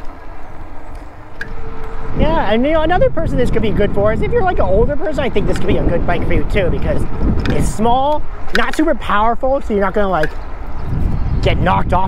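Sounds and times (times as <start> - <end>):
thin steady whine: 0.0 - 8.6
tyre noise on pavement: 0.0 - 12.0
wind rumbling on microphone: 0.0 - 12.0.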